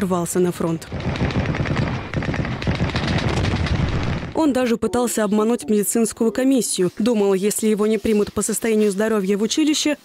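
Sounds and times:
rapid gunfire: 0.9 - 4.4
heavy low rumble: 1.2 - 4.4.

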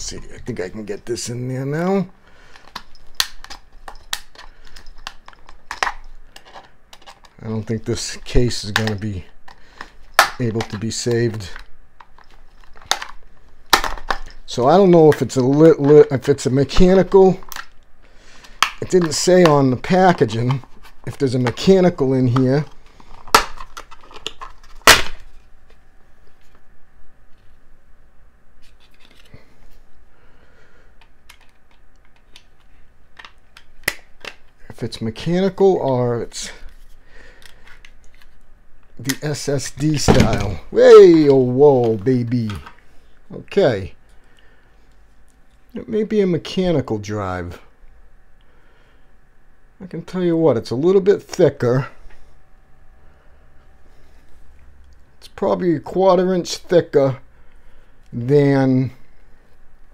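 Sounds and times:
plastic clips snapping: 31.0 - 34.6.

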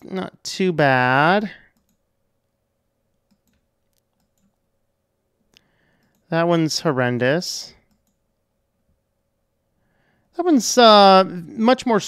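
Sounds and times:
computer mouse clicks: 1.7 - 2.0, 3.2 - 4.6, 5.5 - 6.3, 7.8 - 8.2.

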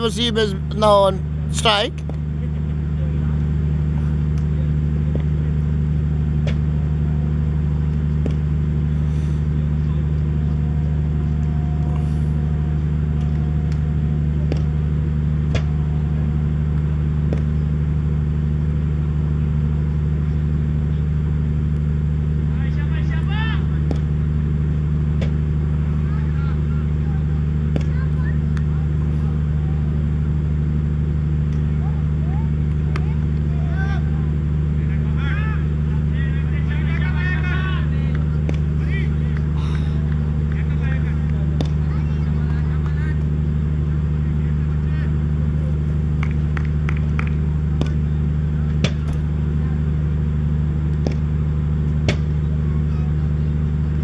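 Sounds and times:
low mechanical hum: 0.0 - 54.0.

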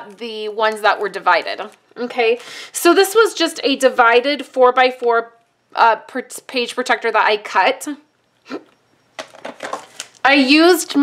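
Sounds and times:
plastic page protector rustling: 0.0 - 2.6, 9.2 - 10.3.

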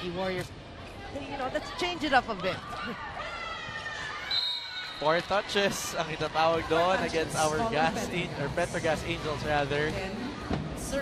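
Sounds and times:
referee's whistle: 4.3 - 5.2.

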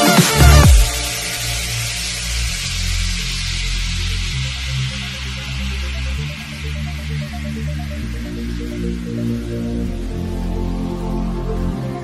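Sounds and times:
electronic dance music bass note: 0.0 - 12.0
steady hiss: 0.0 - 12.0.

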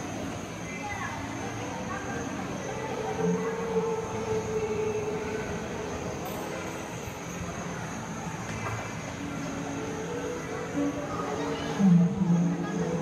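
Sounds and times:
mall crowd hubbub: 0.0 - 13.0.

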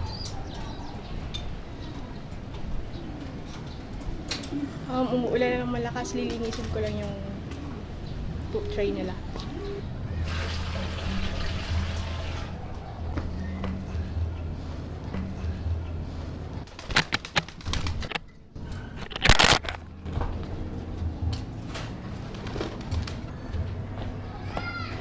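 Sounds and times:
steady low hum: 0.0 - 24.4
water splashing in a bucket: 10.2 - 12.5.

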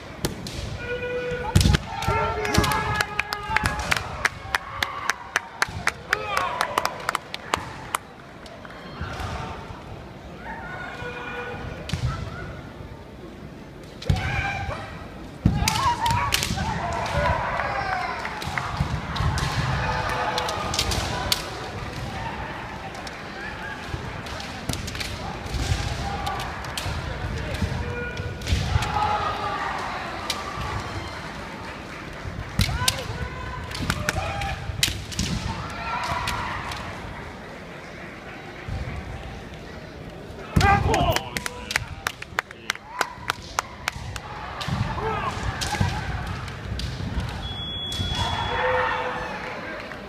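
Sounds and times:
bamboo swords clacking: 32.6 - 36.8.

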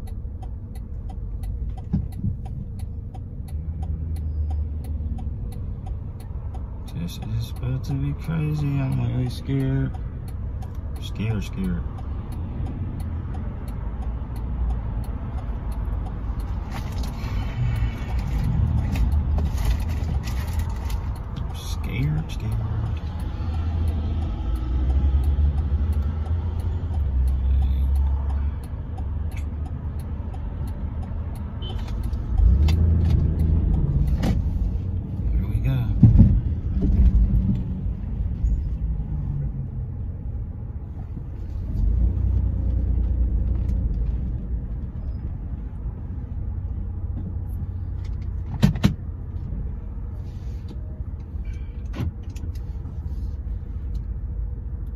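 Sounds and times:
engine and road rumble: 0.0 - 54.9.

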